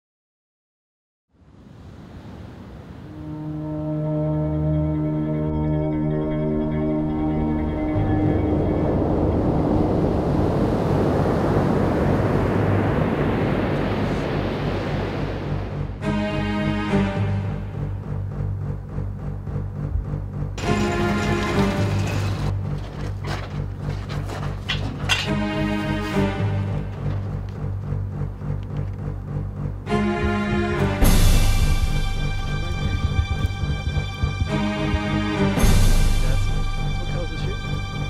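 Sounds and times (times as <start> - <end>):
dark tense background music: 3.1 - 11.7, 14.6 - 38.0
sustained drone chord: 3.1 - 24.1, 24.7 - 38.0
low rushing wash: 8.6 - 16.2.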